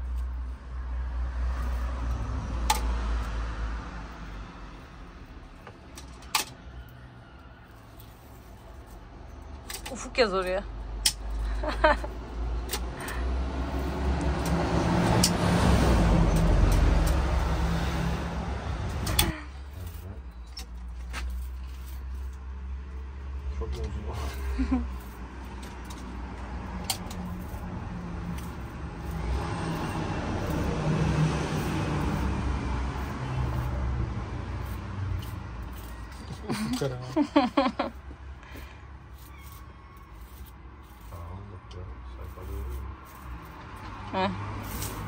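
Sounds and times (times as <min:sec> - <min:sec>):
vehicle engine rumble: 0:00.0 - 0:45.0.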